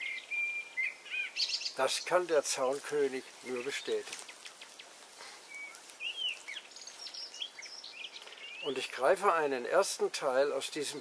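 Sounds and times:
songbirds whistling: 0.0 - 2.1, 3.6 - 8.8
faint hiss: 0.0 - 11.0.

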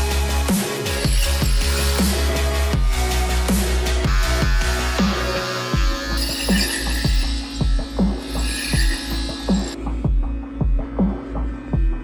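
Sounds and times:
electronic music with bass beat: 0.0 - 12.0.

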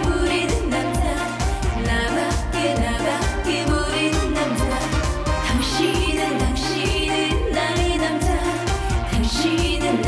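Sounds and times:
upbeat dance-pop backing: 0.0 - 10.0
woman singing: 0.0 - 10.0.

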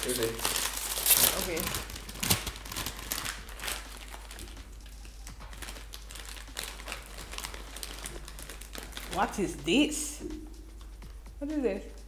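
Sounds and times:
plastic chip bag rustling: 0.0 - 9.5.

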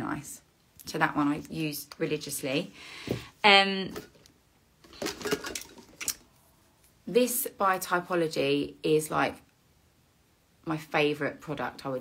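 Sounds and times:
bottles being put down: 4.9 - 6.1.

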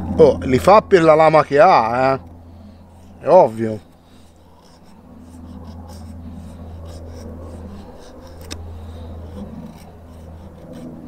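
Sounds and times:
knife shaving wood: 1.8 - 11.0.

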